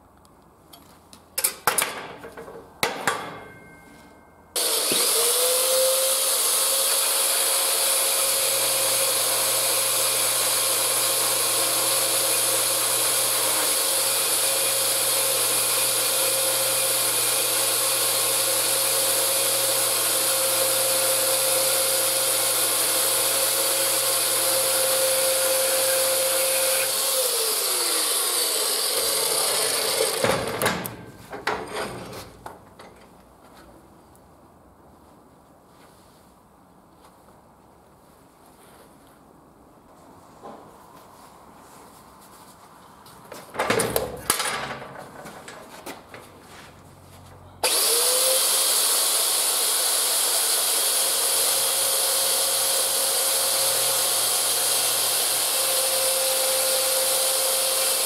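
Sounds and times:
bandsaw cutting steel tube: 4.6s - 30.6s, 47.6s - 58.0s.

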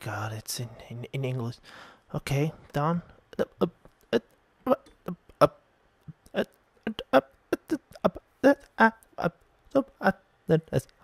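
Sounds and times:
man muttering: 2.2s - 11.0s.

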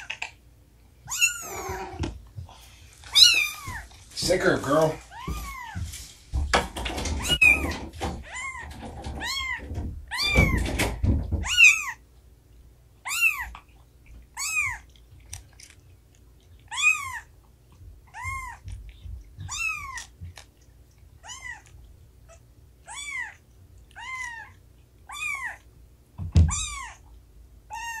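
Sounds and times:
kitten mewing: 1.1s - 2.1s, 13.1s - 13.6s, 16.7s - 17.3s, 18.1s - 18.8s, 19.4s - 20.2s, 22.3s - 25.7s, 26.4s - 27.0s, 27.7s - 28.0s
heavy footsteps and knocks: 3.4s - 11.6s, 17.8s - 20.4s.

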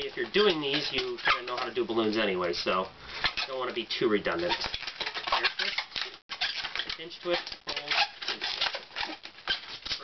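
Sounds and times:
balloon rubber squeaking: 0.0s - 10.0s.

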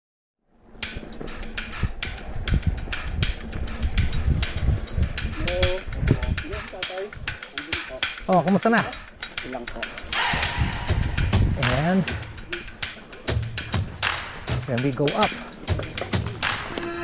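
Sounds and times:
bike rattling clicks and knocks: 0.8s - 10.0s.

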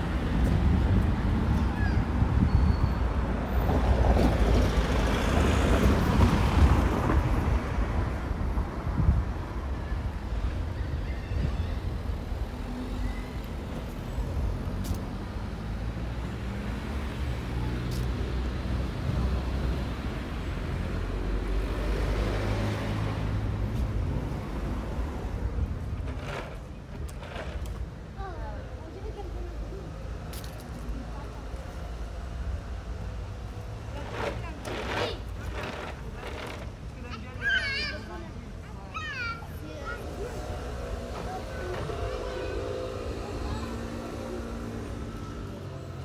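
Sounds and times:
cars driving past: 12.0s - 28.0s, 29.0s - 46.0s.

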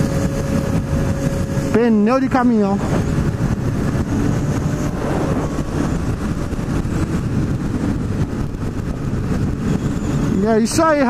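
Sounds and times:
wind and tyre noise: 0.0s - 11.0s
motorcycle engine cruising: 2.8s - 10.4s.

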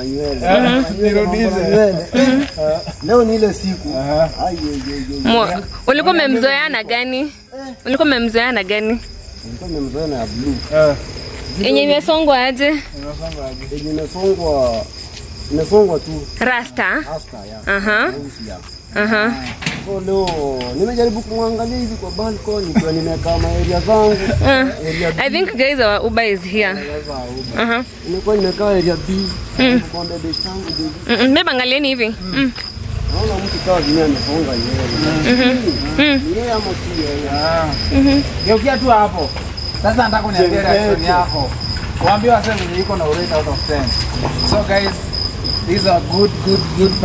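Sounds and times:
crickets trilling: 0.0s - 47.0s
men talking and laughing: 0.0s - 47.0s.

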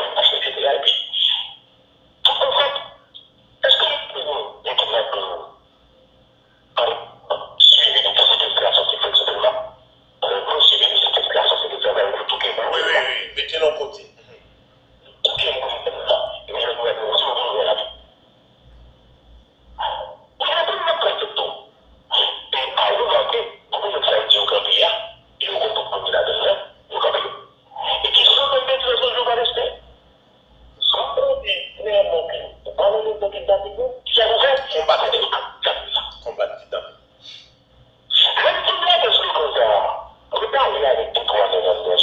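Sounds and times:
person talking over telephone: 3.6s - 5.5s, 6.8s - 14.4s, 20.4s - 29.8s, 30.8s - 37.0s, 38.1s - 42.0s.

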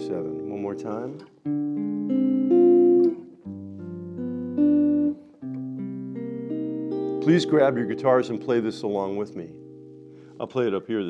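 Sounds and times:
clean electric guitar chords: 0.0s - 11.0s.

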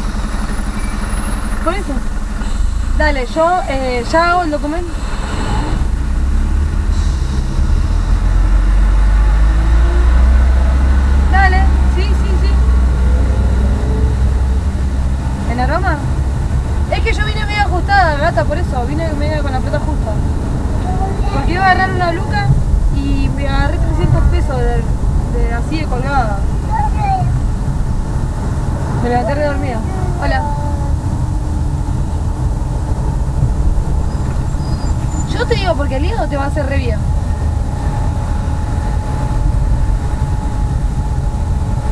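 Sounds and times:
car engine and road noise: 0.0s - 41.9s
person speaking: 17.0s - 27.4s, 29.0s - 31.1s.

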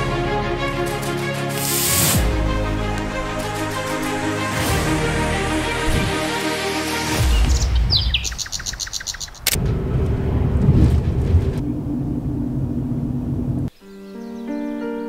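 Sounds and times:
music: 0.0s - 8.2s, 13.7s - 15.0s
bird chirping trill: 7.1s - 9.5s, 13.7s - 15.0s
car engine and road rumble: 8.4s - 13.7s.

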